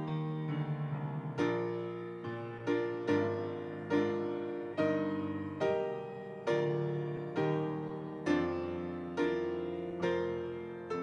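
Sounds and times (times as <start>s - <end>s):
slow piano chords: 0.0s - 11.0s.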